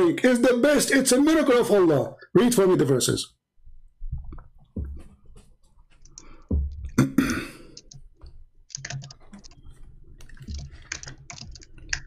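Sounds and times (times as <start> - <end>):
loud cough: 7.0 - 7.6
computer clicks: 7.6 - 12.0.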